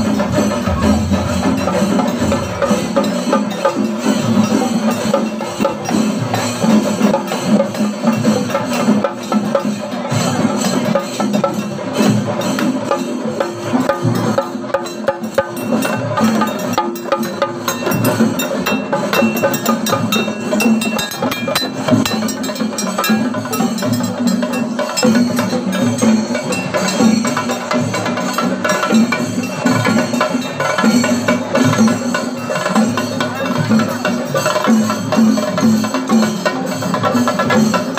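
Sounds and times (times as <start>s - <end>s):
fast drum ensemble rhythm: 0.0s - 37.9s.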